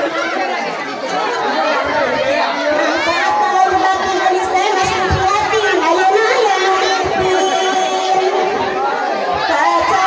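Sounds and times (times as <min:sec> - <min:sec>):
crowd chattering and shouting: 0:00.0 - 0:10.0.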